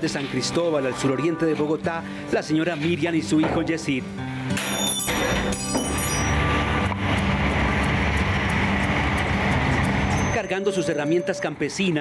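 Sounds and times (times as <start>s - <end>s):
background music: 0.0s - 12.0s
traffic rumbling: 6.3s - 11.8s.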